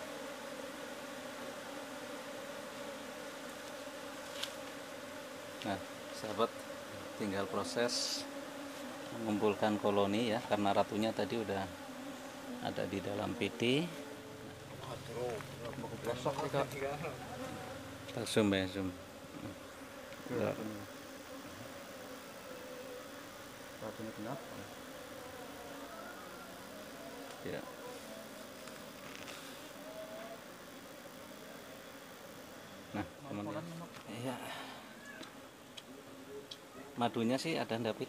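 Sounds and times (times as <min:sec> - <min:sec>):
bees buzzing: 0:00.0 - 0:38.0
man talking: 0:07.1 - 0:08.3, 0:09.1 - 0:11.8, 0:12.6 - 0:14.0, 0:14.8 - 0:17.5, 0:20.3 - 0:20.9, 0:23.8 - 0:24.8, 0:27.0 - 0:28.3.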